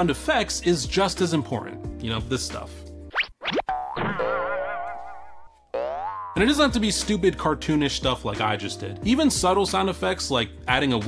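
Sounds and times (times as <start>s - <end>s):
cartoon rising slides: 3.1s - 6.4s
wobbling boing tone: 3.7s - 6.5s.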